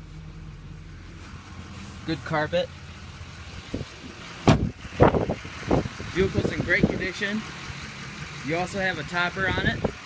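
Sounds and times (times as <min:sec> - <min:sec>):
diesel engine idling: 0:00.0 - 0:10.0
truck door slamming: 0:03.7 - 0:05.9.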